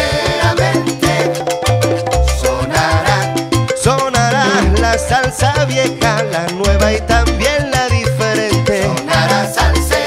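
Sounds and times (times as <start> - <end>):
salsa music: 0.0 - 10.0.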